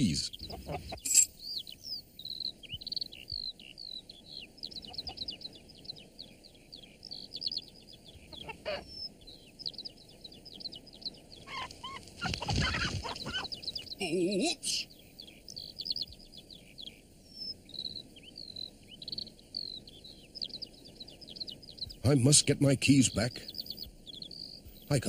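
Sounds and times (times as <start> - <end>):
hen clucking: 0.0 - 22.0
small birds chirping: 0.0 - 25.0.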